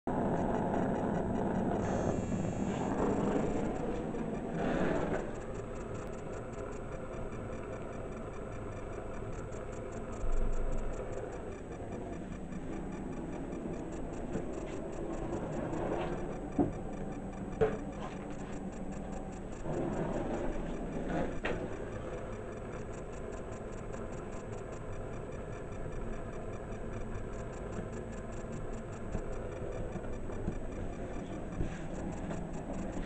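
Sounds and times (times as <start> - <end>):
fast ticking: 0.1 - 33.0
sharp clicks: 0.3 - 33.0.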